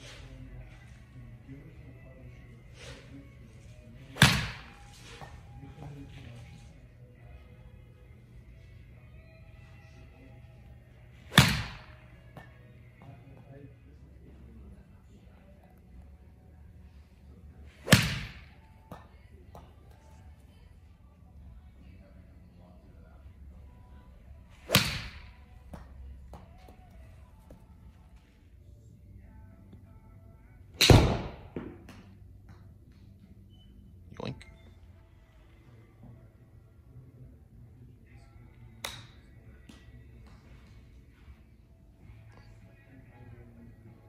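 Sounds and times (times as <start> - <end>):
golf club striking ball: 24.7 - 25.3.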